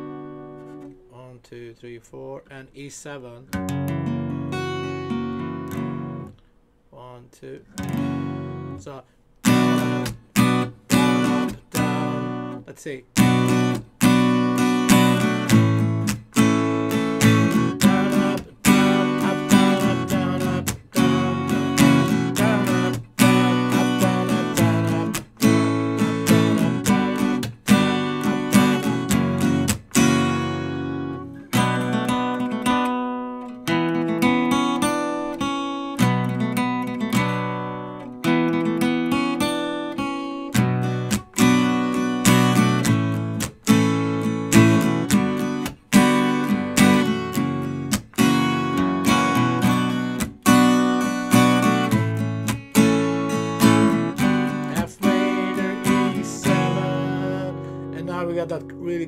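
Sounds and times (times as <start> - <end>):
acoustic guitar strumming: 0.0 - 1.5, 3.1 - 59.0.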